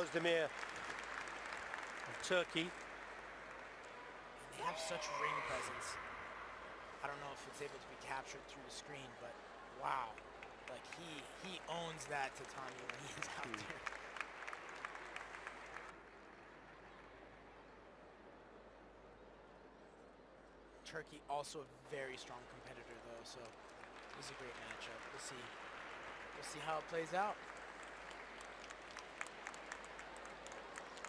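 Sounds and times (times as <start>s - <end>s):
scattered handclaps: 0.0s - 4.0s, 10.1s - 16.0s, 23.3s - 31.0s
arena crowd noise: 0.0s - 31.0s
faint dull hall ambience: 0.0s - 31.0s.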